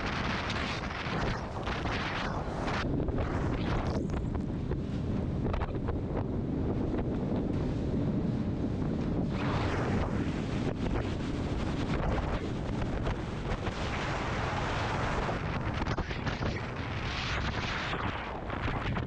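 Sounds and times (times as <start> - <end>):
boat hull and waves rumble: 0.0 - 19.0
wind buffeting microphone: 0.0 - 19.0.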